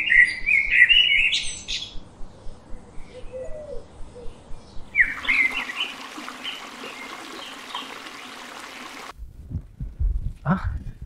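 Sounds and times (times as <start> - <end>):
birds chirping: 0.0 - 9.1
outdoor background hiss: 0.0 - 9.8.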